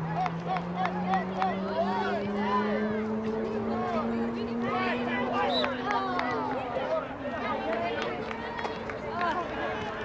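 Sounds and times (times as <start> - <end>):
distant shouts and calls: 0.0 - 10.0.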